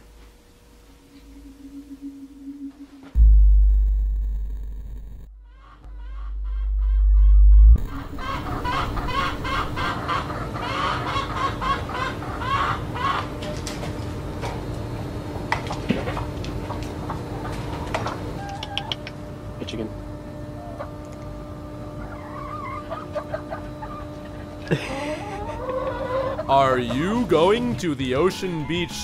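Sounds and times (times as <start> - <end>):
deep electronic sound effect: 1.3 - 10.1
chickens clucking: 7.8 - 13.4, 21.9 - 29.0.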